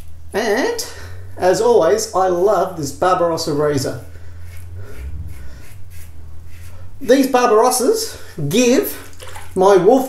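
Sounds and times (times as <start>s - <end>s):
low steady hum: 0.0s - 10.0s
razor scraping stubble: 4.4s - 6.8s.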